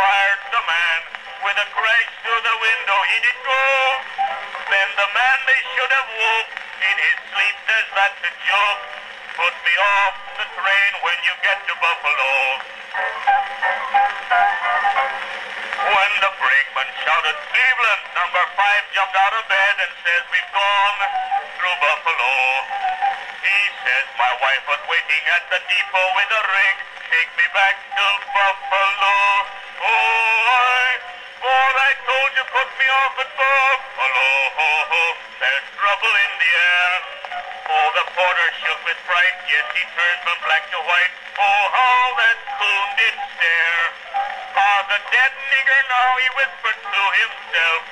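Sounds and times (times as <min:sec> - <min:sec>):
singing on phonograph: 0:00.0 - 0:47.9
phonograph instrumental phrase: 0:05.6 - 0:38.2.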